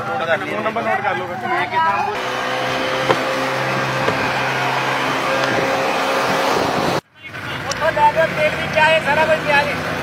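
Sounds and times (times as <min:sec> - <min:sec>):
outboard motor running: 0:02.2 - 0:07.0.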